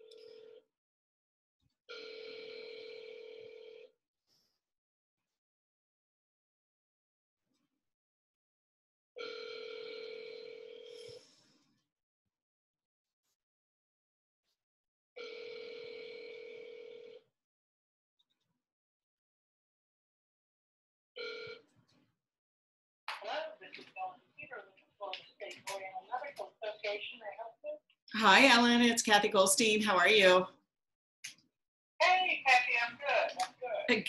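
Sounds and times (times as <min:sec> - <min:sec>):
telephone ring tone buzzing: 0:01.9 - 0:03.9, 0:09.2 - 0:11.2, 0:15.2 - 0:17.3.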